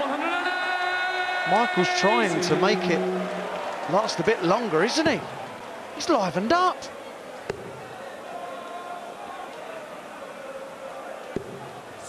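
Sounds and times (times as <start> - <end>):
crowd murmur: 1.4 - 12.0.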